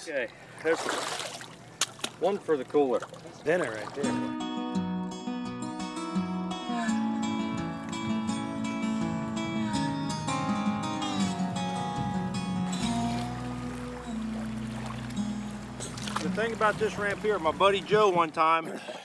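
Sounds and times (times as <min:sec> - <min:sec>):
plucked acoustic guitar music: 0:04.0 - 0:18.2
low held note: 0:06.4 - 0:16.3.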